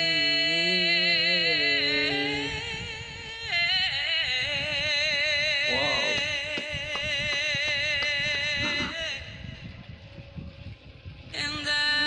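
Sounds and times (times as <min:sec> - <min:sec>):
woman singing: 0:00.0 - 0:05.1, 0:11.4 - 0:12.0.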